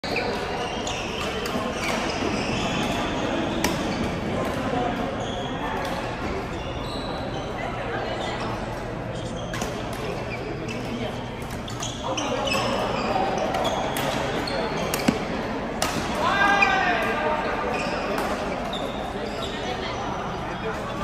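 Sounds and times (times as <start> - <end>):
court shoes squeaking: 0.0 - 21.0
players' voices: 0.0 - 21.0
racket hitting shuttlecock: 14.8 - 16.2.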